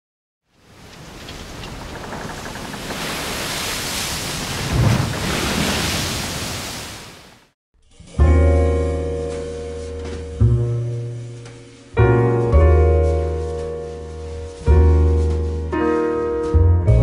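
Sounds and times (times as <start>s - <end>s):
rush of noise: 0.8s - 7.4s.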